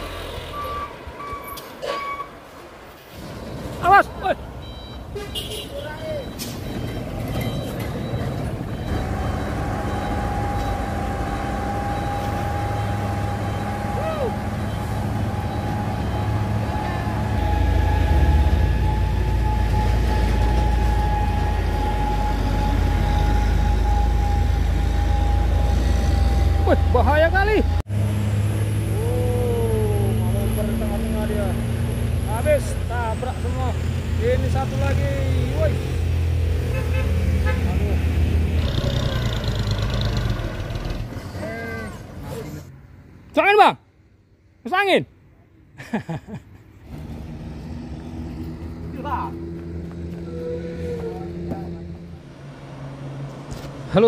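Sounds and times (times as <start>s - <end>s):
diesel truck engines rumbling: 0.0s - 54.0s
people calling out: 13.6s - 14.5s, 28.9s - 30.4s.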